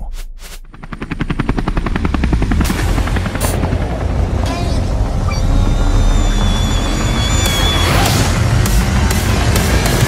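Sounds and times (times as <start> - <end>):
engine revving: 1.4 - 10.0.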